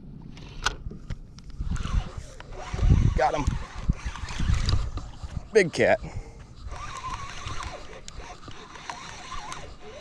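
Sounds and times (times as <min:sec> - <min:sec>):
fishing reel clicks and knocks: 0:06.6 - 0:10.0.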